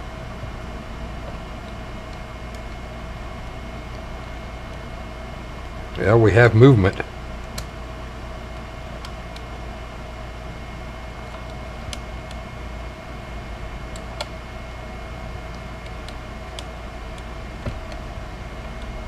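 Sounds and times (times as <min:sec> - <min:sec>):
electrical hum: 0:00.0 - 0:19.0.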